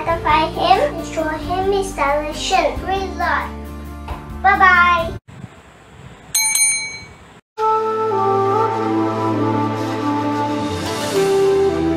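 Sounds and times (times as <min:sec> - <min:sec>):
music: 0:00.0 - 0:05.2, 0:07.6 - 0:11.9
bell ding: 0:06.4 - 0:07.3.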